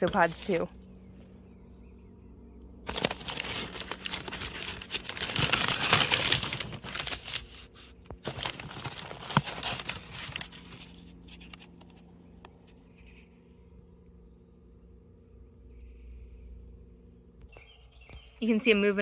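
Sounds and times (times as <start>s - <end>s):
packing paper crinkling: 2.9s - 12.1s.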